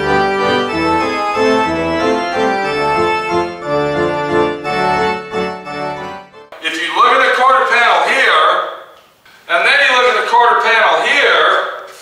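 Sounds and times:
man talking: 6.6s - 8.8s, 9.5s - 11.9s.

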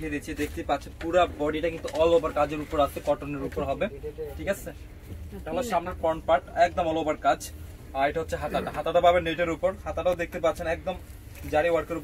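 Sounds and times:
man talking: 0.0s - 4.8s, 5.5s - 12.0s.

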